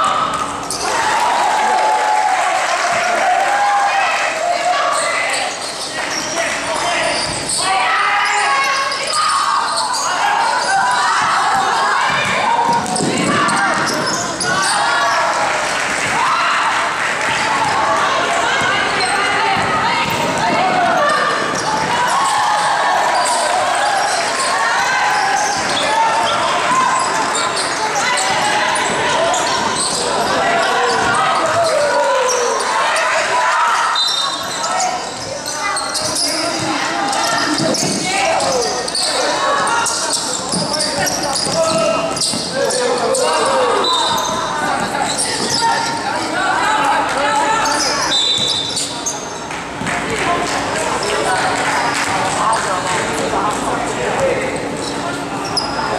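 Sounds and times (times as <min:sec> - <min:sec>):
overlapping indistinct voices: 0:00.0 - 0:55.9
basketball bouncing on gym floor: 0:10.8 - 0:14.6, 0:17.2 - 0:22.0, 0:35.9 - 0:38.7, 0:40.5 - 0:42.8, 0:43.9 - 0:45.7.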